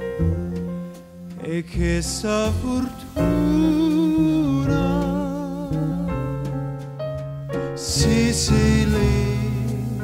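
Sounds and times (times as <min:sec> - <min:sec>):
piano: 0:00.0 - 0:10.0
upright bass: 0:00.0 - 0:10.0
man singing with vibrato: 0:01.4 - 0:06.2, 0:07.8 - 0:10.0.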